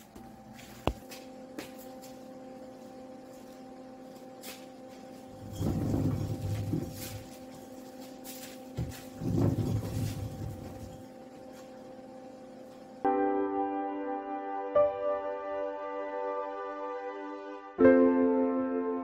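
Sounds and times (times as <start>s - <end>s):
steady hum: 0.0s - 13.1s
casters rolling over concrete: 5.3s - 11.1s.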